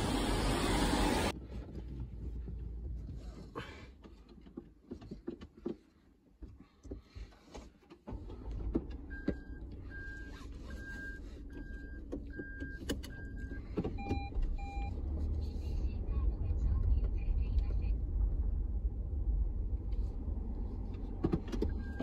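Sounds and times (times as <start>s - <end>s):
car rumbling moving off: 0.0s - 1.4s.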